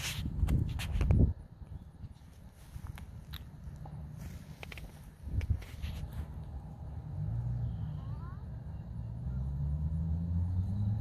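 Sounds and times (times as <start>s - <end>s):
footsteps on grass: 2.2s - 6.4s.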